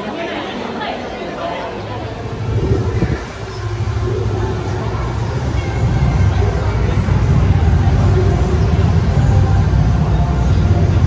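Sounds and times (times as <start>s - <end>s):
crowd chatter: 0.0s - 11.0s
street traffic rumble: 0.0s - 11.0s.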